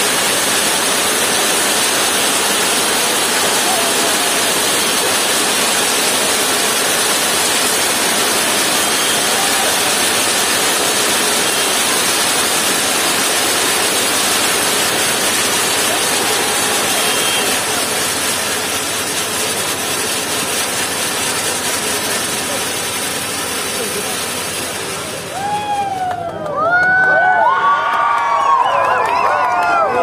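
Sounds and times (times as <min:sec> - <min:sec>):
fountain fireworks hissing: 0:00.0 - 0:27.6.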